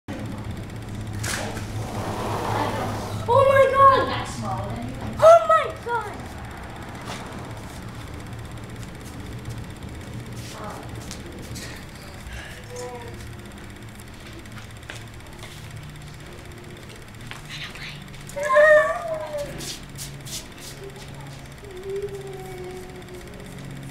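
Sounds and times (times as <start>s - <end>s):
steady low hum: 0.1s - 23.9s
child exclaiming oh: 18.4s - 19.6s.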